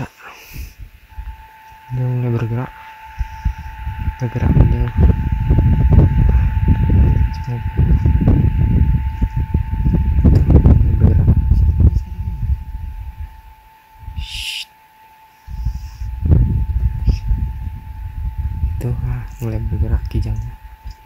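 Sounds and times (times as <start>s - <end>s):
wind buffeting microphone: 0.0s - 14.4s, 15.5s - 21.0s
faint steady high tone: 0.0s - 21.0s.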